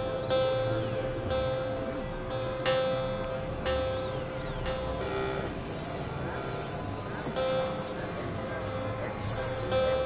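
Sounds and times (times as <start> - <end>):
experimental synthesizer music: 0.0 - 10.0.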